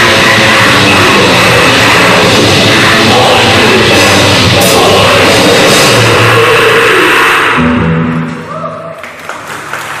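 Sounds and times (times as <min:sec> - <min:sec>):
black metal band playing: 0:00.0 - 0:08.5.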